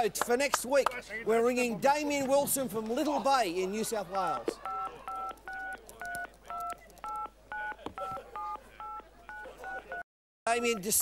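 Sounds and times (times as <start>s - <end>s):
telephone keypad beeps: 4.6s - 10.8s.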